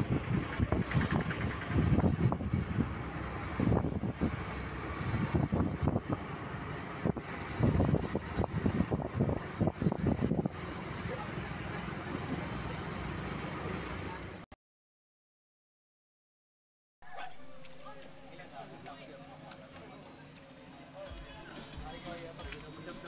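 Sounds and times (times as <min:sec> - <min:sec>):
wind buffeting microphone: 0:00.0 - 0:10.7
motorcycle and truck engines: 0:00.0 - 0:14.5, 0:17.2 - 0:23.0
road noise: 0:00.0 - 0:14.5, 0:17.2 - 0:23.0.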